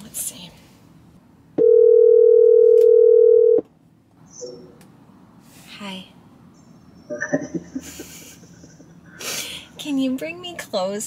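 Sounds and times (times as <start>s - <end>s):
phone ringback tone: 1.6s - 3.6s.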